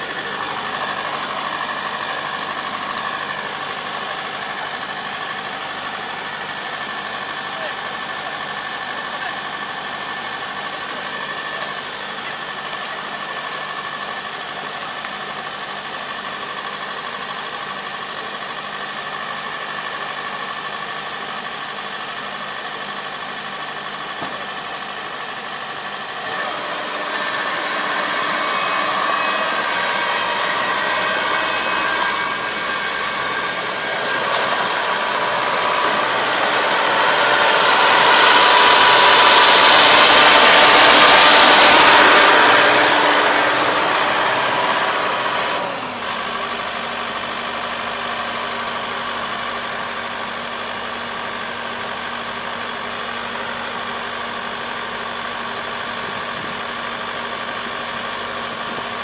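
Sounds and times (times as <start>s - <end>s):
combine harvester running: 0.0s - 59.0s.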